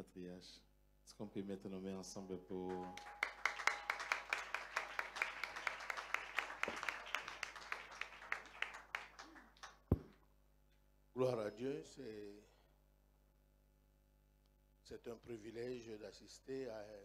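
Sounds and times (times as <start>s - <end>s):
audience applause: 2.7s - 9.8s.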